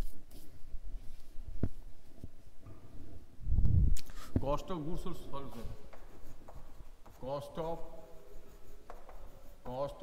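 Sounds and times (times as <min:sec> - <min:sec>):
chalk scratching on blackboard: 0:05.4 - 0:10.0
sharp chalk tap: 0:05.5 - 0:07.8, 0:08.5 - 0:10.0.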